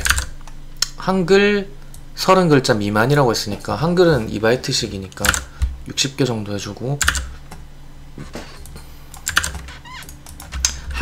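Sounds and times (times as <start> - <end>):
computer keyboard clicks: 0.0 - 0.3, 5.1 - 5.5, 7.0 - 7.3, 8.6 - 11.0.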